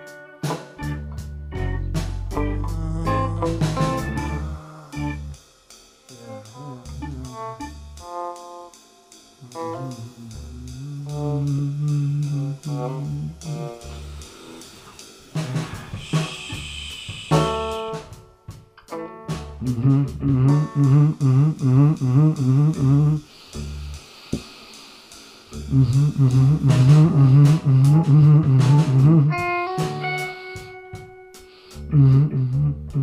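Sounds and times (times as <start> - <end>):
bass guitar: 0.0 - 5.4, 6.2 - 8.4, 9.4 - 24.0, 25.5 - 33.0
electric guitar: 0.0 - 5.4, 6.1 - 8.7, 9.4 - 23.9, 25.5 - 33.0
drum kit with snare and cymbals: 0.0 - 33.0
harmonica wailing: 25.7 - 32.3.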